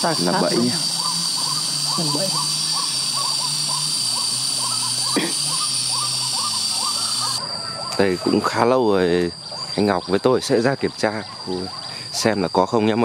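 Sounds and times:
bird hooting calls: 0:00.0 - 0:12.8.

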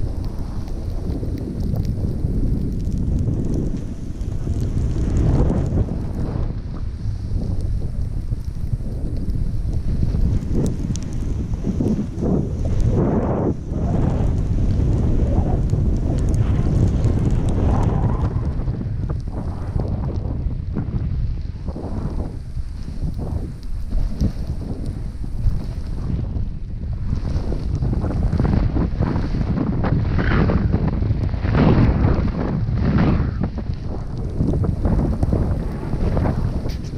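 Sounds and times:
wind buffeting microphone: 0:00.0 - 0:36.9
ski edges scraping packed snow: 0:21.7 - 0:26.2, 0:27.1 - 0:30.8, 0:34.2 - 0:36.9.

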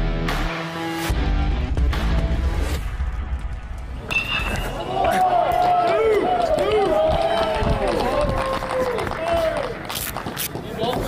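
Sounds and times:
people shouting and cheering: 0:04.1 - 0:09.9.

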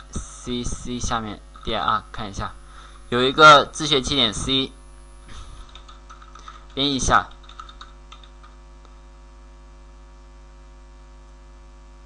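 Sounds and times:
electrical mains hum: 0:00.0 - 0:12.0
faint keyboard clicks: 0:05.6 - 0:08.9.

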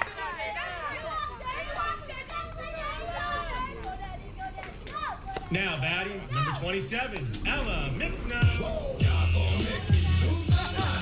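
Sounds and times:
children shouting and cheering: 0:00.0 - 0:06.8, 0:07.6 - 0:11.0.

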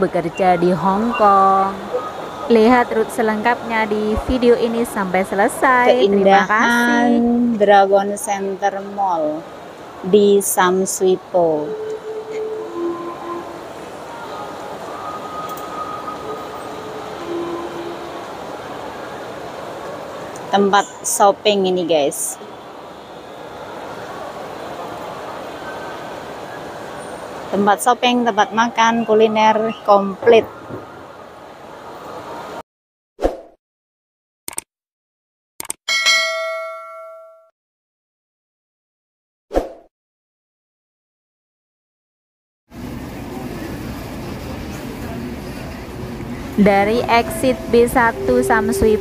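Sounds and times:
hubbub of noise: 0:00.0 - 0:32.6, 0:42.8 - 0:49.0
bright notification bell ding: 0:35.9 - 0:37.5, 0:47.2 - 0:49.0.

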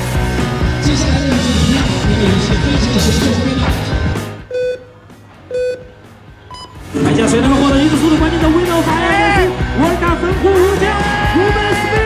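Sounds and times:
short high-pitched beep: 0:04.5 - 0:04.9, 0:05.5 - 0:05.9, 0:06.5 - 0:06.8
electronic beep: 0:04.5 - 0:06.9.

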